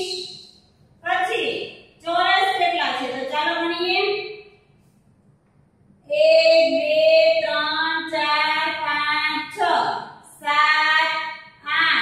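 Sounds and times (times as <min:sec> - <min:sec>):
woman chanting: 0:06.1 - 0:12.0.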